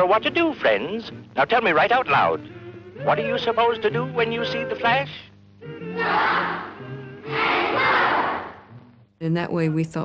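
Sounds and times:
background music: 0.0s - 10.0s
children shouting in unison: 5.8s - 8.6s.

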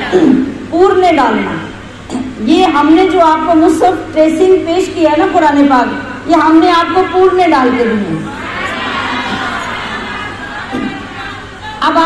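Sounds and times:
crowd talking and calling out: 8.2s - 11.8s.

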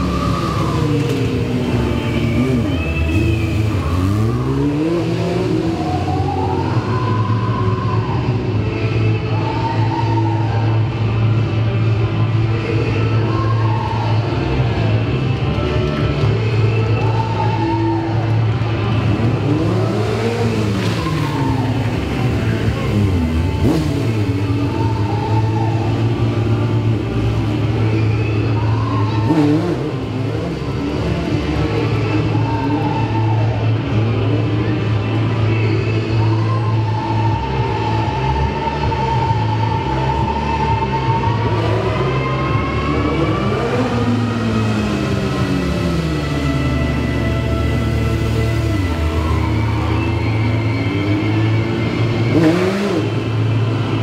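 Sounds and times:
motorcycle engine revving: 0.0s - 7.8s, 18.5s - 35.9s, 41.3s - 54.0s
loud background music: 0.0s - 54.0s.

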